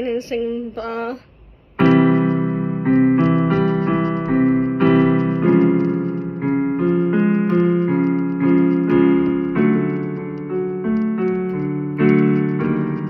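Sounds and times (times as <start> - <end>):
piano keyboard notes and chords: 1.7 - 13.0.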